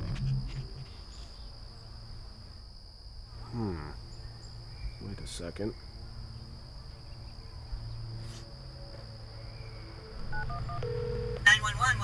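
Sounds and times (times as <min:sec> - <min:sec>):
crickets chirping: 0:00.0 - 0:12.0
phone ringback tone: 0:10.2 - 0:11.4
two-tone keypad beeps: 0:10.3 - 0:11.4.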